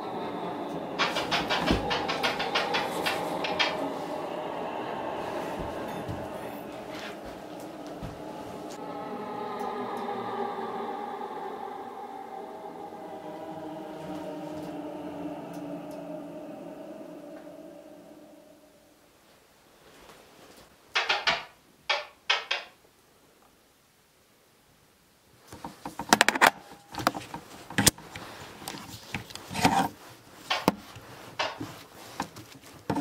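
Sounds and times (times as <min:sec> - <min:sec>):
steady tonal drone: 0:00.0 - 0:19.2.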